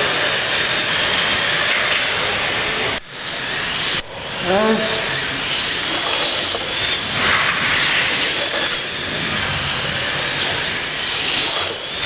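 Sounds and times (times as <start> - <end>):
slot car electric motors whining: 0.0 - 12.0.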